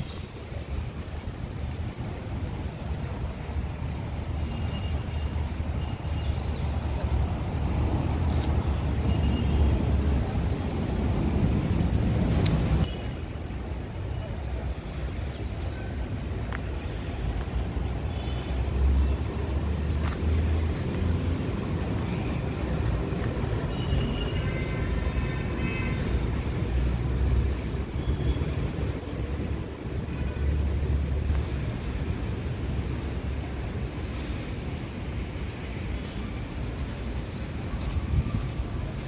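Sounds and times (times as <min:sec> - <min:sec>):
road traffic rumble: 0:00.0 - 0:39.0.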